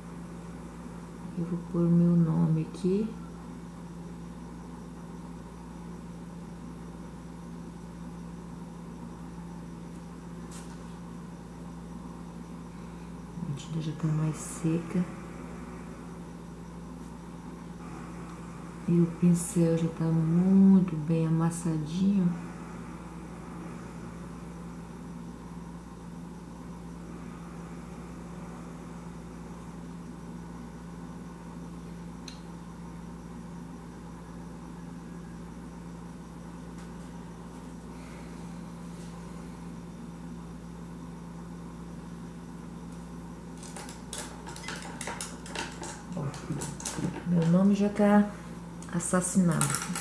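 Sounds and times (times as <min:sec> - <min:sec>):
low room hum: 0:00.0 - 0:50.0.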